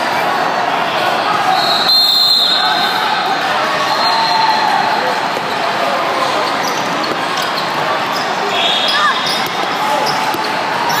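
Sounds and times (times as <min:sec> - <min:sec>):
hubbub of crowd voices: 0:00.0 - 0:11.0.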